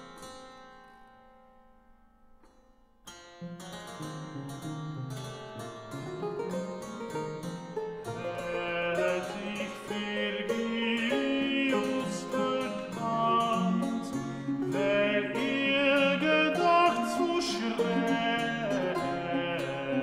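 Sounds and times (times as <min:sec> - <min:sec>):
plucked harpsichord-like accompaniment: 0:03.5 - 0:20.0.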